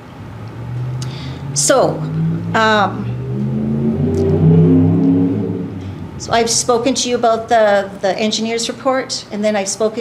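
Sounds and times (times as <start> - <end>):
motor vehicle engine drone: 0.0 - 8.9.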